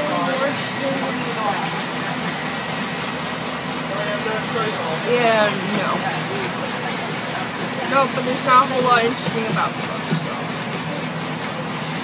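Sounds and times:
bus engine and road rumble: 0.0 - 12.0.

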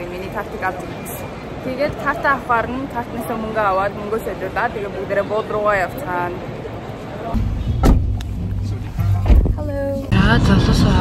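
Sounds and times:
sharp knock: 7.4 - 8.2.

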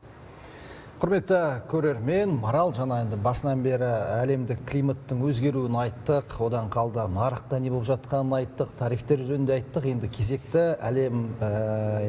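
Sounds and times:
man speaking: 1.0 - 12.0.

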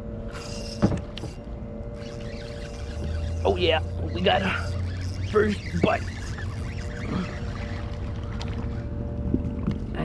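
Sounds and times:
fishing reel cranking: 0.3 - 9.0.

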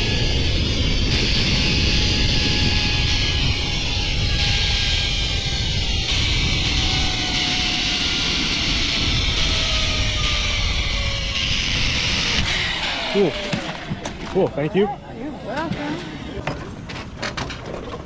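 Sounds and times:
zipline pulleys whirring on cable: 0.0 - 16.5
wind rumble on microphone: 0.0 - 18.0.

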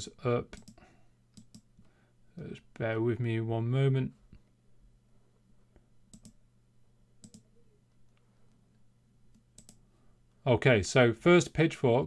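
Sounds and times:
low steady hum: 0.0 - 12.0
computer mouse clicks: 0.6 - 1.9, 6.1 - 6.4, 7.2 - 8.6, 9.3 - 9.8.

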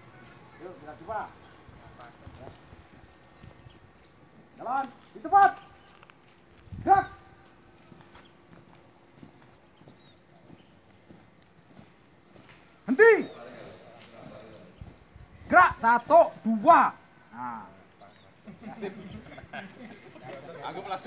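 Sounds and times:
boots marching on grass: 0.0 - 17.1
person shouting commands: 4.6 - 5.7, 6.8 - 7.4, 12.9 - 13.3, 15.5 - 17.7.

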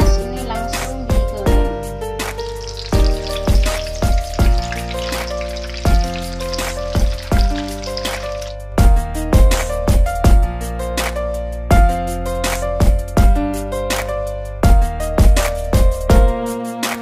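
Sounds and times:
music with a bass beat: 0.0 - 17.0
hot oil sizzling: 2.2 - 8.6.

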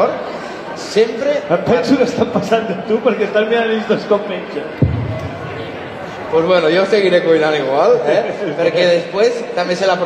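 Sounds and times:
murmur of voices in a hall: 0.0 - 10.0
dull booming thump: 4.8 - 5.6.

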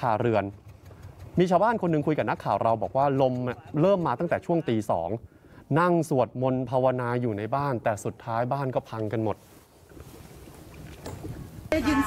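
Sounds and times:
water: 0.0 - 12.0
wind: 0.0 - 12.0
woman speaking: 11.7 - 12.0.

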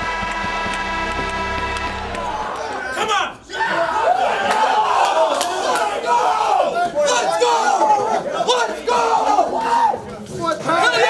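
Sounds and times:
men shouting and whooping: 2.3 - 10.0.

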